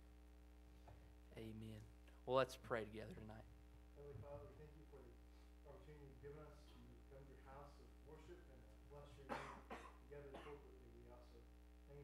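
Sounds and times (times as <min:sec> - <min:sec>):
person coughing: 0:09.2 - 0:10.8.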